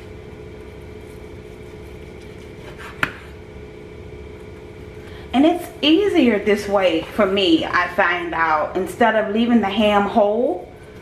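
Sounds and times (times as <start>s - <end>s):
steady background hum: 0.0s - 11.0s
knife slicing through ham: 1.0s - 3.4s.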